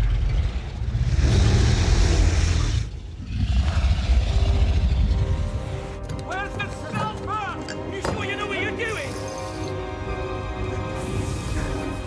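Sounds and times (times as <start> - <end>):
deep rumbling growl and roar: 0.0 - 6.0.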